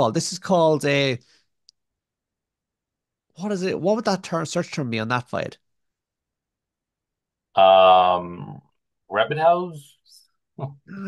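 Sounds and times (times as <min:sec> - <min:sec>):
man speaking: 0:07.6 - 0:11.0.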